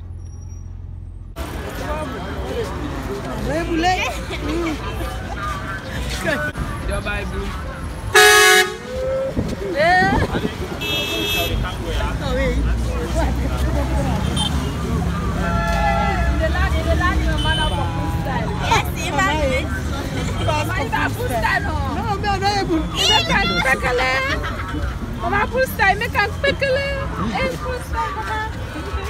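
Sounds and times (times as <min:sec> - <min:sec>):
street traffic: 0:00.0 - 0:29.0
vehicle horn toot: 0:08.1 - 0:08.9, 0:10.8 - 0:11.8, 0:15.4 - 0:16.5, 0:17.3 - 0:18.2.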